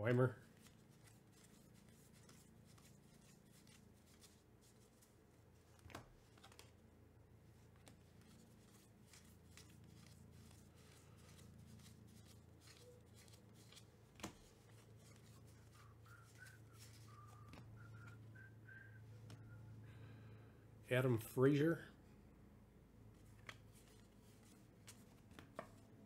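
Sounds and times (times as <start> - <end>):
trading cards clicking: 5.8 - 6.8, 7.8 - 18.1.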